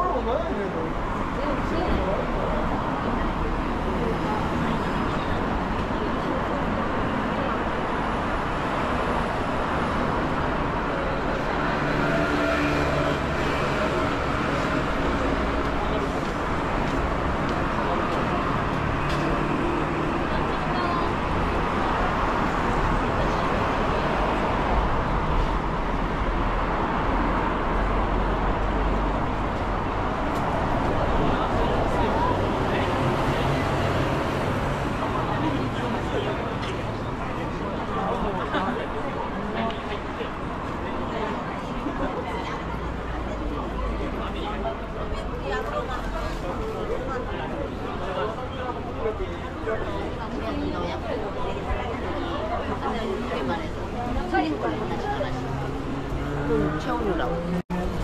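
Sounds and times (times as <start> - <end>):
passers-by talking: 0.0 - 58.0
traffic hum of passing cars: 0.0 - 58.0.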